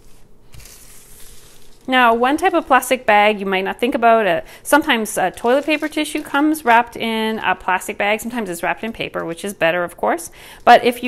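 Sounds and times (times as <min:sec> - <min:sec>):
plastic bag rustling: 0:00.0 - 0:03.5, 0:04.2 - 0:11.0.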